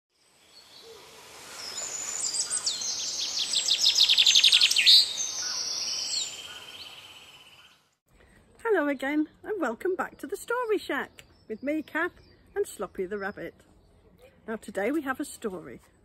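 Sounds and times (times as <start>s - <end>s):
songbirds chirping and trilling: 0.4s - 8.0s, 8.8s - 15.5s.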